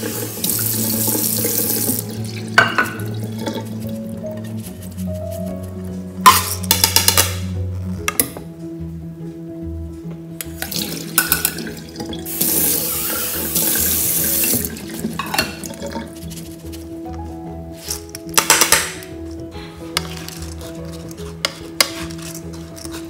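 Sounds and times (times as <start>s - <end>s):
water splashing into a metal sink: 0.0s - 3.7s, 10.6s - 16.0s
strainer and bowl clattering: 10.6s - 11.7s, 14.5s - 16.4s, 20.0s - 23.0s.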